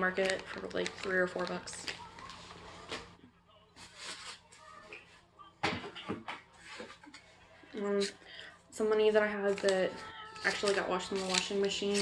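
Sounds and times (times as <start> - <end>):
rustling and handling noise: 0.0 - 3.2, 9.4 - 12.0.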